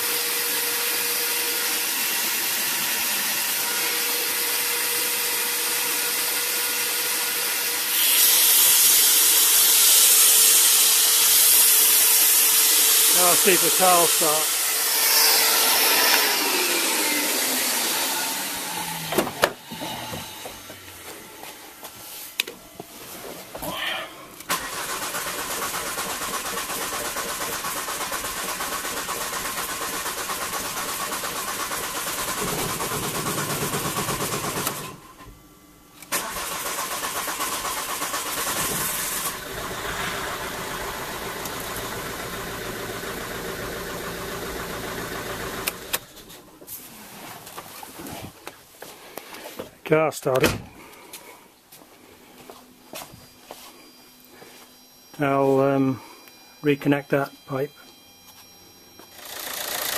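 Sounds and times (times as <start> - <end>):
vacuum cleaner winding down: 0.0 - 21.2, 24.4 - 35.0, 36.1 - 46.0, 59.1 - 59.9
diesel engine running: 36.2 - 46.0.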